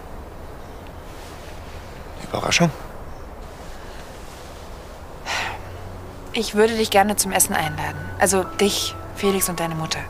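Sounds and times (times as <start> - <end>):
low outdoor background hum: 0.0 - 10.0
intake of breath: 3.5 - 5.9.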